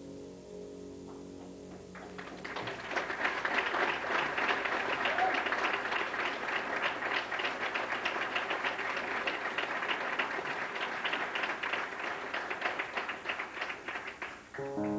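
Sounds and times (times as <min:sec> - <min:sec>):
audience applauding: 0:01.9 - 0:14.9.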